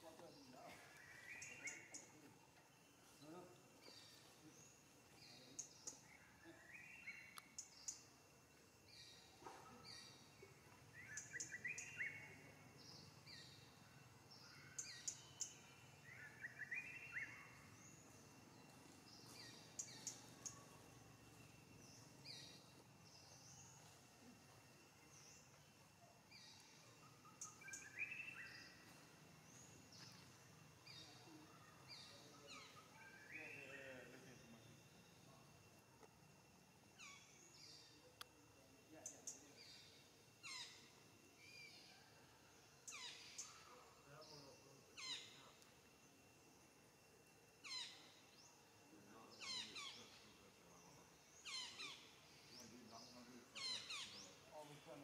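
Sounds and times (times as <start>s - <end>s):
faint bird chirps: 0.0s - 55.0s.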